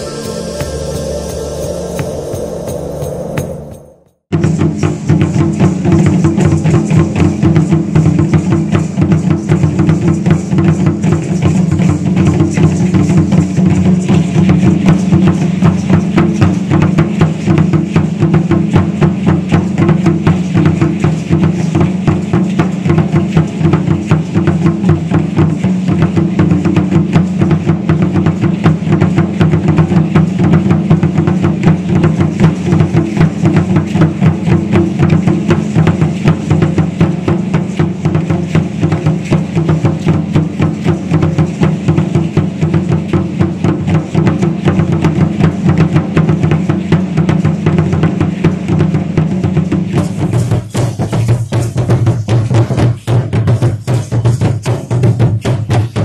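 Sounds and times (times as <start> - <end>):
large drum fast steady beat: 0.0 - 56.0.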